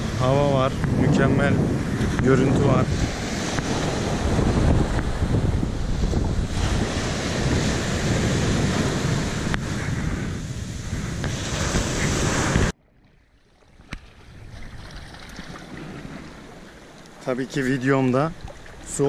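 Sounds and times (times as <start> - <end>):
small waves breaking on sand: 1.8 - 12.7.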